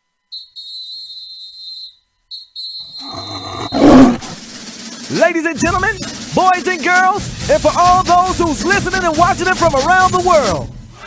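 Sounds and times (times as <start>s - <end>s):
whistle blown: 0.2s - 4.2s.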